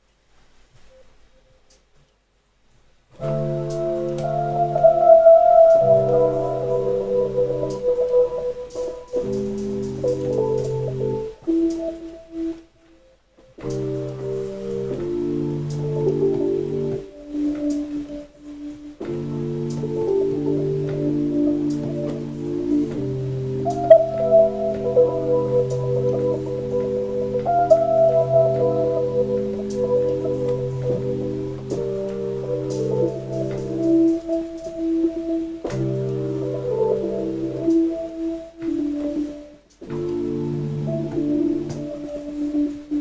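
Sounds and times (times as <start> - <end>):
organ-like synth chords: 3.2 - 12.6, 13.6 - 43.0.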